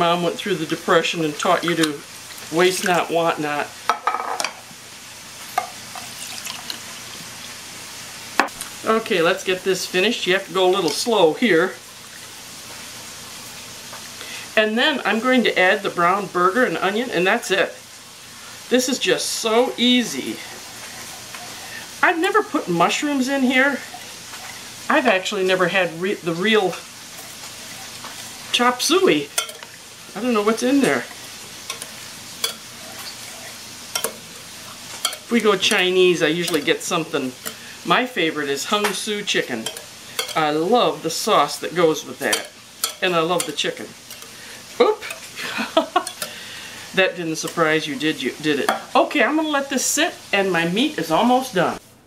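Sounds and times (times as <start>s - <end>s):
meat sizzling in a frying pan: 0.0s - 51.9s.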